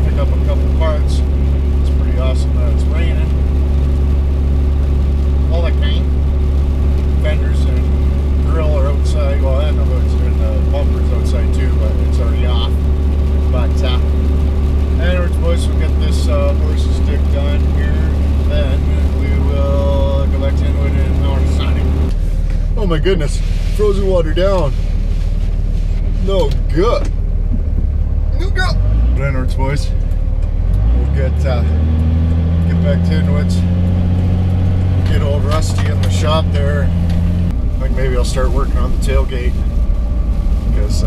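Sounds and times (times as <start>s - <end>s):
truck engine and road noise: 0.0s - 41.0s.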